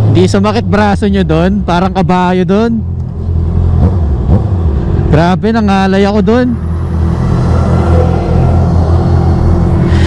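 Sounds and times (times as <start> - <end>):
motorcycle engines idling: 0.0 - 9.9
heavy truck passing: 2.9 - 10.0.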